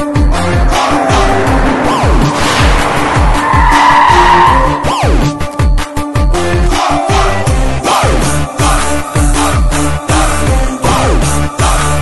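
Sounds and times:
film score with deep bass pulse: 0.0 - 12.0
car tyres squealing: 0.6 - 5.5
falling swoosh: 0.7 - 5.2.

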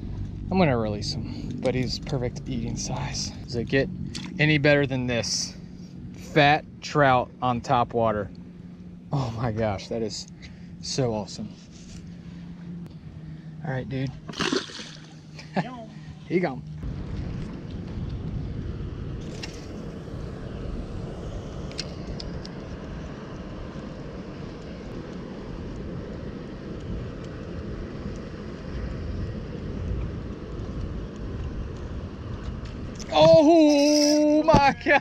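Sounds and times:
wind rumble on microphone: 0.0 - 13.2, 15.1 - 35.0.

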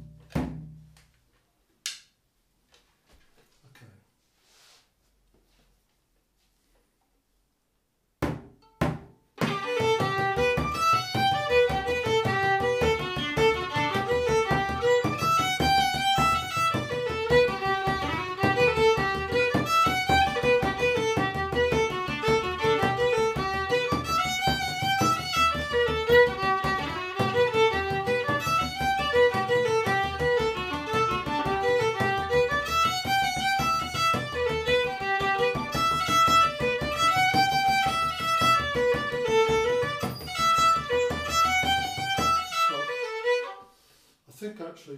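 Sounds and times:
frame drum beating: 0.0 - 1.0, 8.2 - 43.4
sharp knocks: 8.2 - 43.5
fiddle playing a jig: 9.4 - 43.8.

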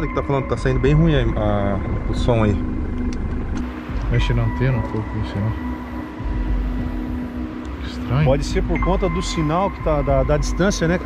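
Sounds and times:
low hum: 0.0 - 11.0
thin high steady tone: 0.0 - 11.0.

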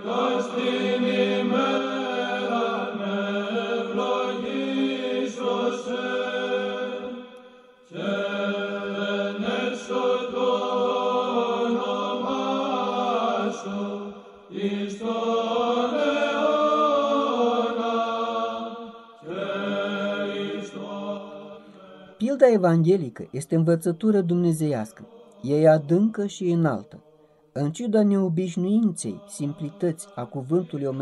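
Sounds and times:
slow religious chant: 0.0 - 27.8, 28.4 - 31.0.

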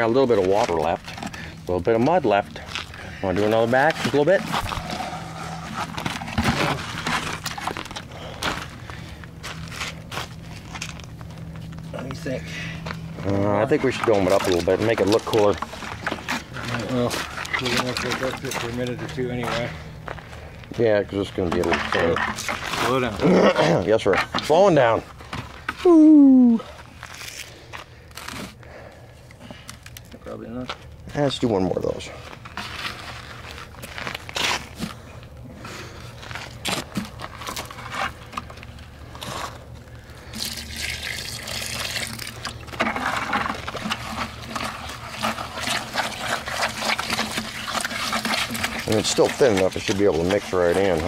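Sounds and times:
cement scraping and packing: 0.0 - 26.0, 26.7 - 28.9, 30.6 - 40.4, 41.6 - 51.0.

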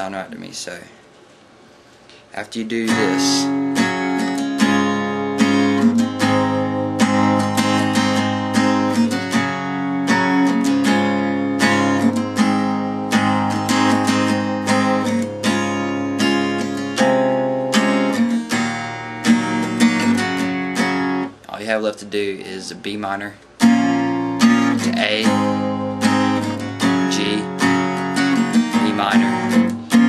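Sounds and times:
acoustic guitar strumming chords: 2.4 - 30.0.

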